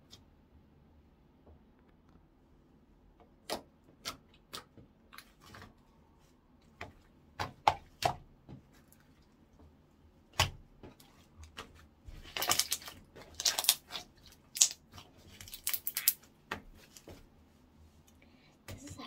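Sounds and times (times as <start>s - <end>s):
slime popping and crackling: 12.1s - 17.0s.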